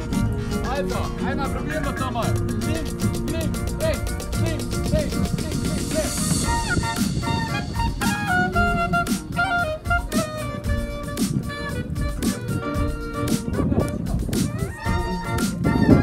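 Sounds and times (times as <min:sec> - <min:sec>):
clarinet melody: 0:00.0 - 0:16.0
electronic backing track with beat: 0:00.0 - 0:16.0.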